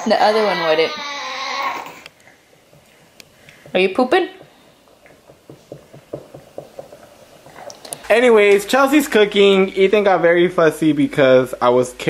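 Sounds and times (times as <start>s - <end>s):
baby whining: 0.0s - 2.1s.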